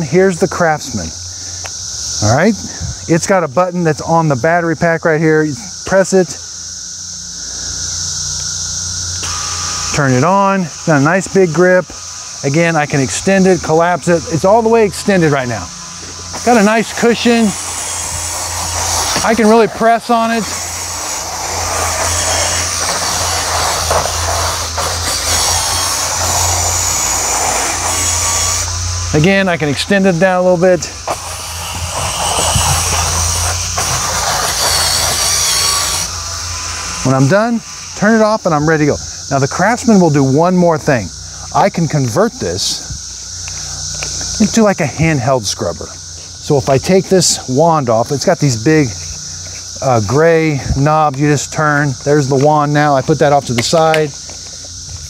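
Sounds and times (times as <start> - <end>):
power scrubber motor humming: 8.7 - 40.2.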